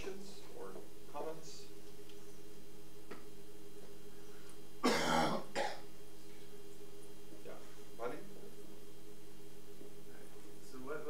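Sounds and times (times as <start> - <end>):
person clearing throat: 4.8 - 5.8.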